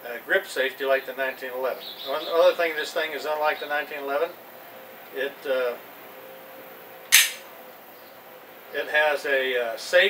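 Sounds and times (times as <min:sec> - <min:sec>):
pistol click: 0:07.1 - 0:07.4.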